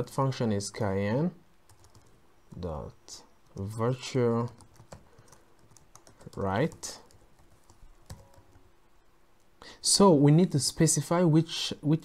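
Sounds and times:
man talking: 0:00.0 - 0:01.4, 0:02.5 - 0:04.6, 0:06.3 - 0:07.1, 0:09.7 - 0:12.0
keyboard keys clicking: 0:01.7 - 0:02.6, 0:04.4 - 0:08.6.

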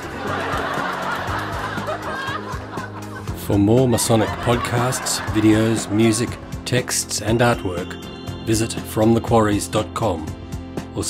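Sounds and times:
people laughing: 0:00.0 - 0:07.8
background music: 0:00.0 - 0:11.0.

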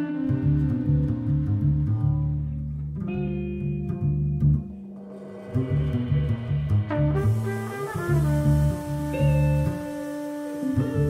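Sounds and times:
bass line: 0:00.0 - 0:11.0
guitar chords: 0:00.0 - 0:11.0.

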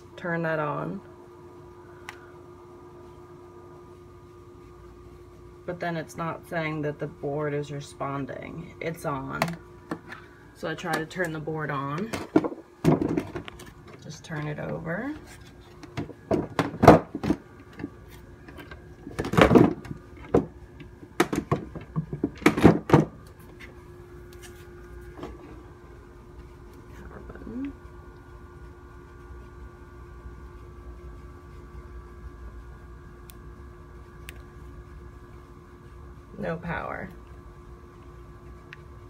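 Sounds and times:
faint steady hum: 0:00.0 - 0:39.0.

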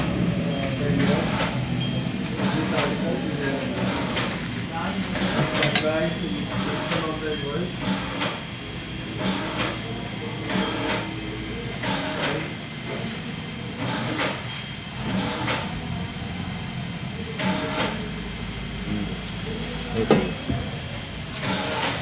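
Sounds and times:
printer rollers rumbling: 0:00.0 - 0:22.0
plastic bag rustling: 0:04.2 - 0:04.7.

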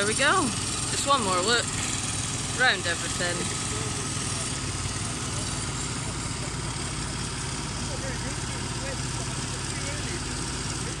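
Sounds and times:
construction machinery engine running: 0:00.0 - 0:11.0
faint distant voices: 0:00.0 - 0:11.0.

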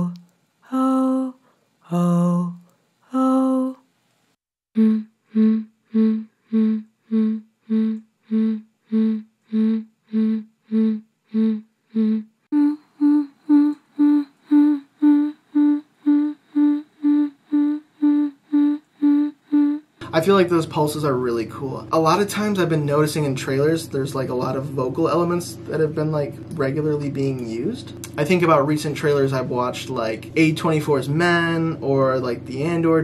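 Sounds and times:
woman humming short pulses: 0:00.0 - 0:03.8, 0:04.8 - 0:20.0
woman singing long oh notes: 0:00.0 - 0:03.9, 0:04.7 - 0:20.0.

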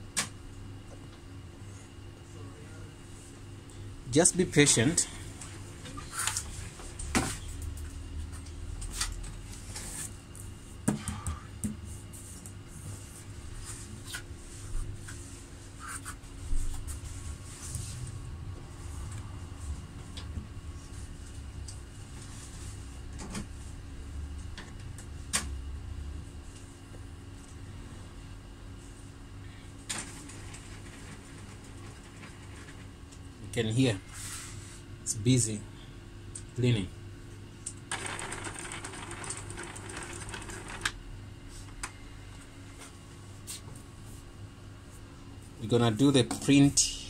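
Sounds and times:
printer mechanical hum: 0:00.0 - 0:44.5.

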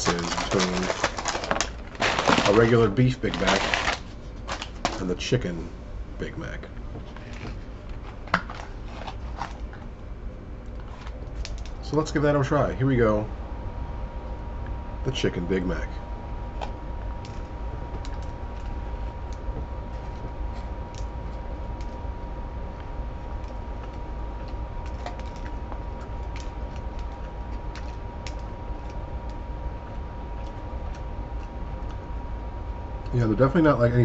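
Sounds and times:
low background hum: 0:00.0 - 0:34.0.

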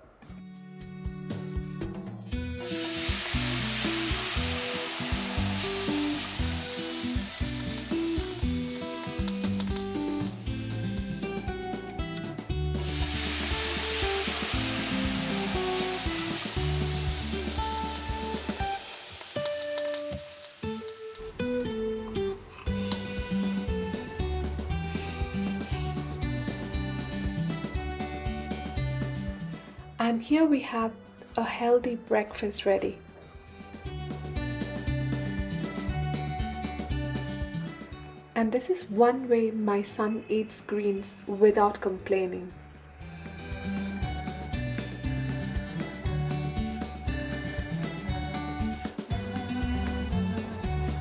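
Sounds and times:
background music: 0:00.0 - 0:51.0
batter sizzling on hot pan: 0:02.6 - 0:11.1, 0:12.7 - 0:21.2.

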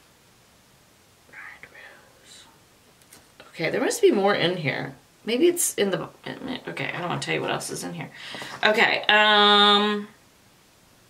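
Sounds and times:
woman whispering: 0:01.3 - 0:02.6.

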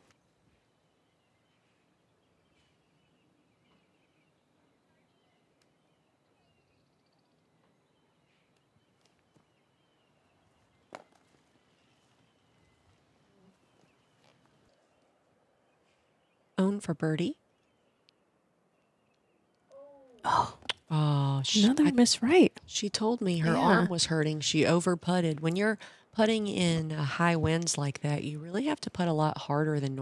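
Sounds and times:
distant birds chirping: 0:00.0 - 0:30.0.

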